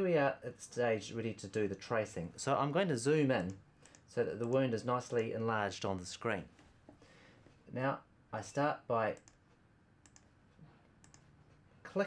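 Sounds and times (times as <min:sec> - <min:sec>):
computer mouse clicks: 0:03.3 - 0:05.4, 0:09.2 - 0:09.4, 0:10.0 - 0:11.6.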